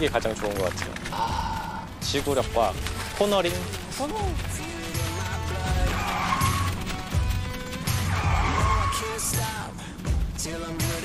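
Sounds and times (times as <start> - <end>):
background music: 0.0 - 11.0
car tyre squeal: 5.8 - 9.6.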